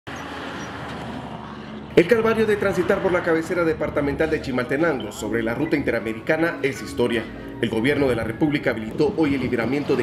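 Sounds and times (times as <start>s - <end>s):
truck driving past: 0.1s - 7.6s.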